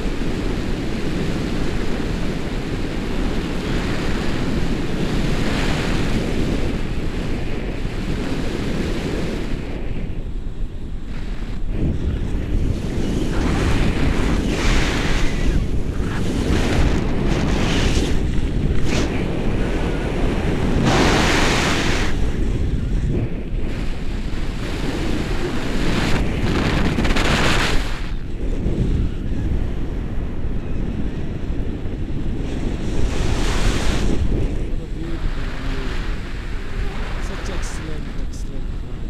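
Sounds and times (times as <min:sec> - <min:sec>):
wind rushing over microphone: 0:00.0 - 0:39.0.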